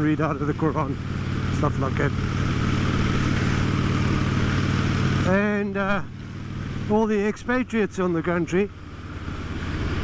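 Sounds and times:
motorcycle engine cruising: 0:00.0 - 0:10.0.

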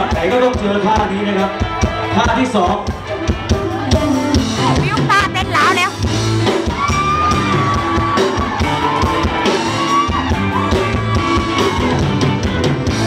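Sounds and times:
live band playing: 0:00.0 - 0:13.0
high held melody line: 0:03.6 - 0:10.0.

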